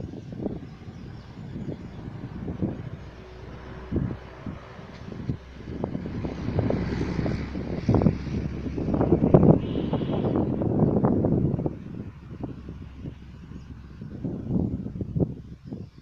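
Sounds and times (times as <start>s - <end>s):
road traffic: 0.0s - 16.0s
wind buffeting microphone: 0.0s - 16.0s
motor vehicle passing: 0.4s - 15.5s.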